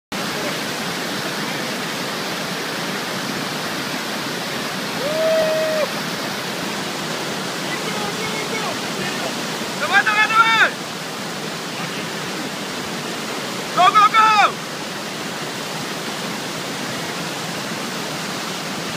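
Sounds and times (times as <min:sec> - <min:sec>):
river rapids rushing: 0:00.1 - 0:18.9
person calling out: 0:05.0 - 0:05.9, 0:13.8 - 0:14.6
person shouting: 0:05.0 - 0:05.9, 0:09.8 - 0:10.8, 0:13.8 - 0:14.6.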